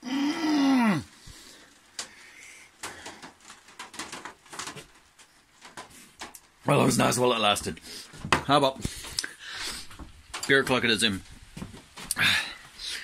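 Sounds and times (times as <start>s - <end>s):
man groaning: 0.0s - 1.1s
faint clicks and handling noises: 1.5s - 6.6s, 7.6s - 12.2s.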